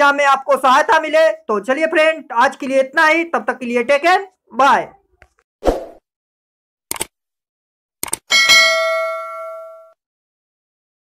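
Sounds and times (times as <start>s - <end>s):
bell ding: 8.3s - 10.0s.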